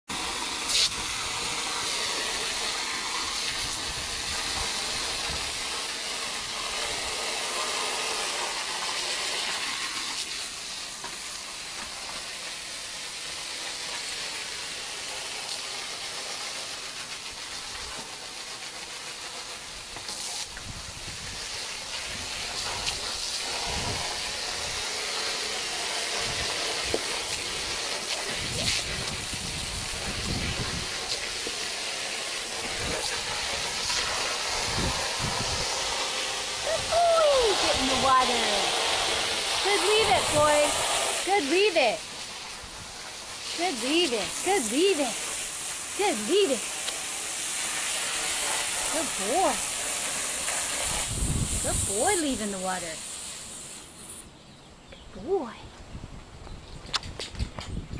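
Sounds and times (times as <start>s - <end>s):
hose spraying water: 0.1s - 54.3s.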